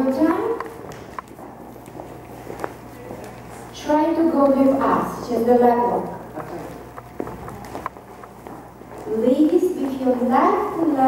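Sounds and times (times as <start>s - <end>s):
dance shoes stepping on wooden floor: 0.0s - 3.7s, 5.7s - 10.2s.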